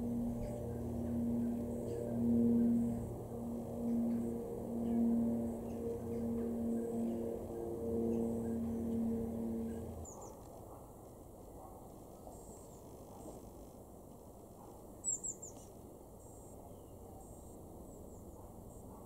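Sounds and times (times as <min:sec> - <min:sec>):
dove cooing: 0:00.0 - 0:10.2.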